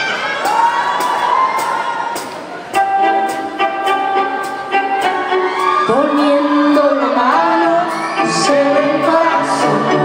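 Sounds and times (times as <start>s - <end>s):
audience cheering and shouting: 0.0s - 3.2s, 4.2s - 10.0s.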